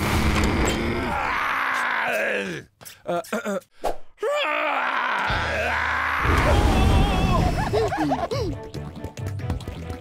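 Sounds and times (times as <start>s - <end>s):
rough vocal groan: 0.0s - 2.6s.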